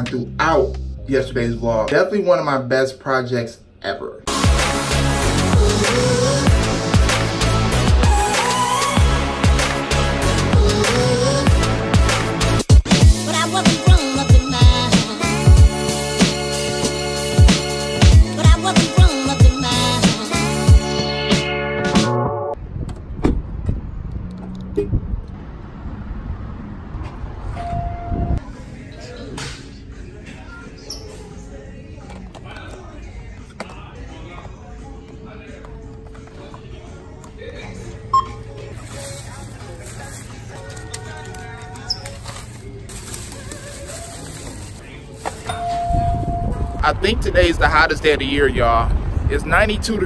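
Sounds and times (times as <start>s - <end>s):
music: 0.0s - 2.1s, 4.3s - 22.6s, 29.4s - 48.5s
faint background voices: 28.4s - 45.8s
short steady beep: 38.1s - 38.4s
plastic bag rustling: 38.6s - 45.5s.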